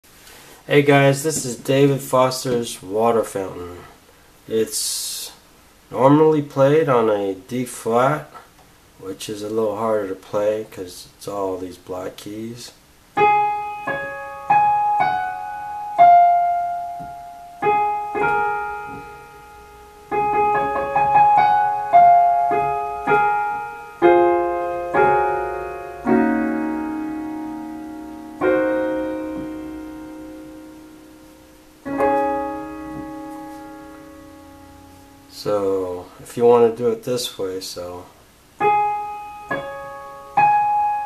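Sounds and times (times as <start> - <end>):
piano melody with chords: 13.1 - 36.0, 38.5 - 41.0.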